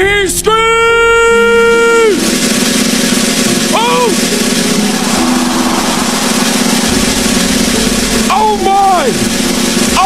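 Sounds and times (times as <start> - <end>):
crowd cheering and screaming: 3.8 - 9.2.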